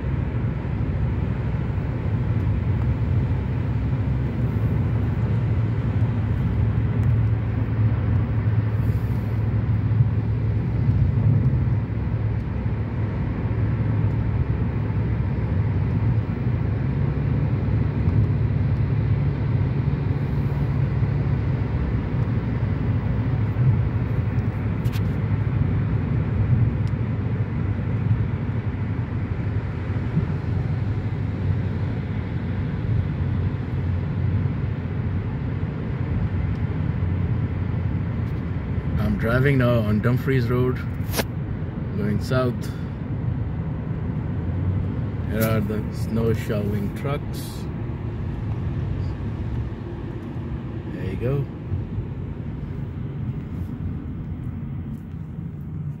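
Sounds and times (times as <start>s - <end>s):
car road noise rumble: 0.0s - 56.0s
tyres hissing on wet road: 8.6s - 9.6s.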